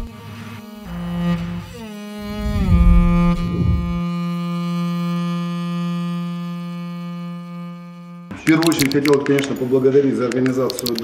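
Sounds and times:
long low cello note: 0.0s - 8.3s.

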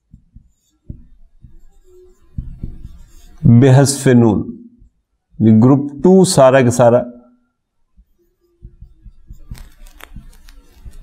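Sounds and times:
marker tapping on whiteboard: 0.0s - 3.5s, 4.8s - 5.4s, 8.0s - 11.0s
marker scratching on whiteboard: 0.0s - 5.6s, 7.9s - 11.0s.

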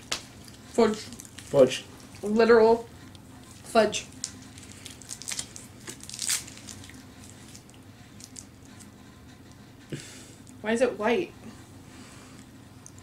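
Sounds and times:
plastic wrapper crinkling and tearing: 0.1s - 2.3s, 3.4s - 8.9s.

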